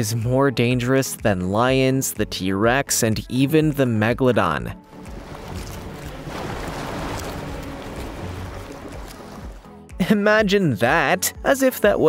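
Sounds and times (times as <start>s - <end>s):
rushing water: 4.8s - 9.8s.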